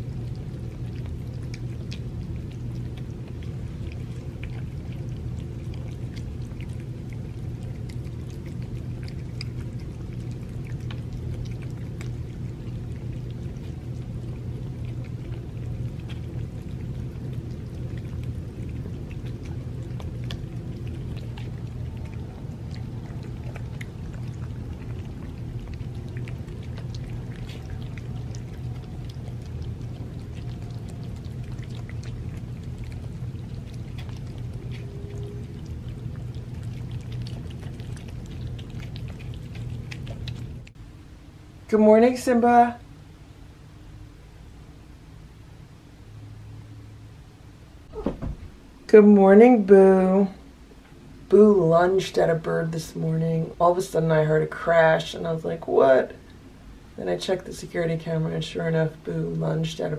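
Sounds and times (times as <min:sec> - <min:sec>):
cats chewing and licking: 0:00.0 - 0:41.0
steady low hum: 0:00.0 - 0:59.9.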